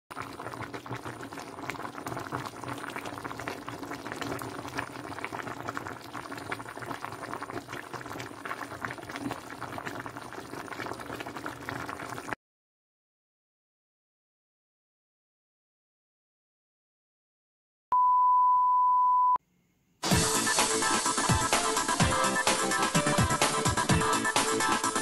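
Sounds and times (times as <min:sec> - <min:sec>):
broth boiling with bubbles popping: 0:00.1 - 0:12.4.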